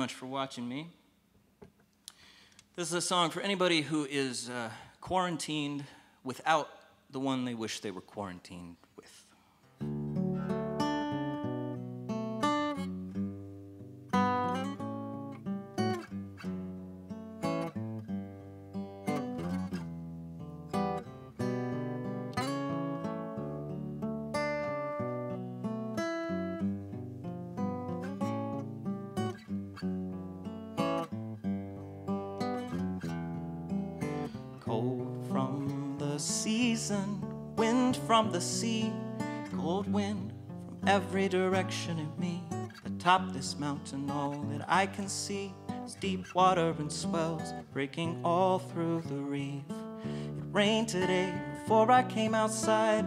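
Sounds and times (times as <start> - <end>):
acoustic guitar picking: 9.6 - 53.0.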